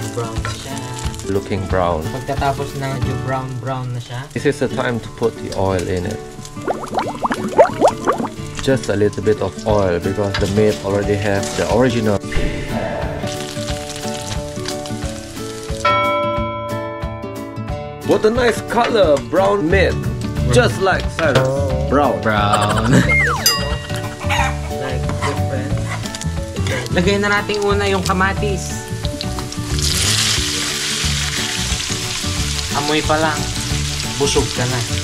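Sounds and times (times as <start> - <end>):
pork sizzling in a pan: 0.0 - 15.8, 22.7 - 35.0
background music: 0.0 - 35.0.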